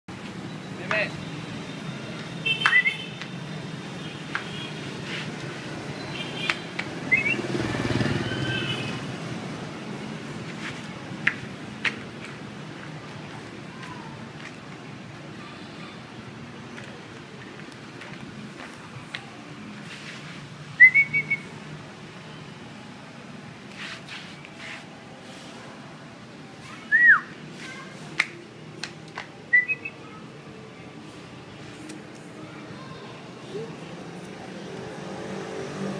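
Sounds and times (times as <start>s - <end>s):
low street rumble: 0.1s - 35.9s.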